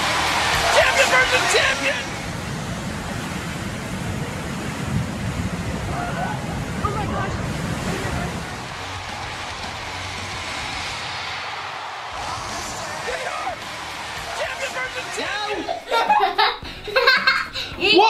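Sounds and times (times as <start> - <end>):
smoke bombs hissing: 0.0 - 15.8.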